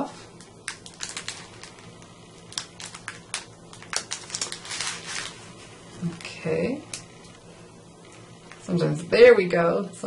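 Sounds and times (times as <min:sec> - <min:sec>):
paper crinkling: 0:00.4 - 0:07.0.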